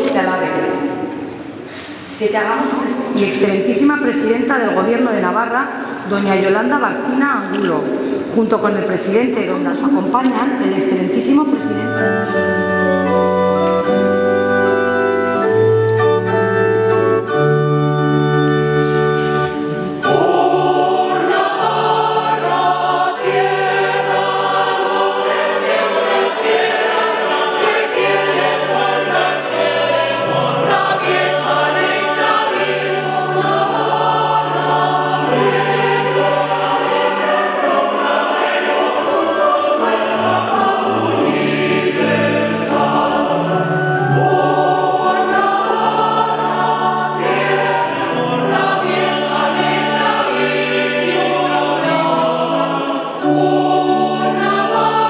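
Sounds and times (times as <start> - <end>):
mixed choir singing: 0.0 - 4.6, 18.0 - 55.0
sustained organ chords: 11.6 - 55.0.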